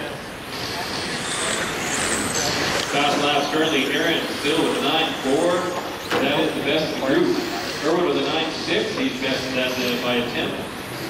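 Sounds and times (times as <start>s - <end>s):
toy cars whirring: 0.4s - 6.1s.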